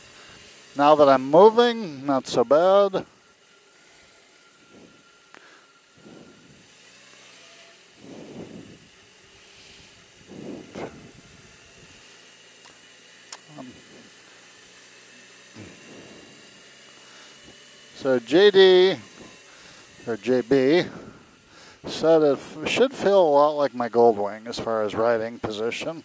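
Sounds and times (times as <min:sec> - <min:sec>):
motorcycle engine at low speed: 0:00.0 - 0:26.0.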